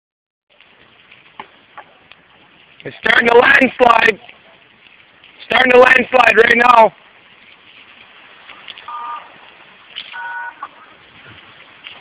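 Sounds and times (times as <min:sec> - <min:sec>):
crunches of gravel: 0:00.5 - 0:12.0
faint hiss: 0:00.5 - 0:12.0.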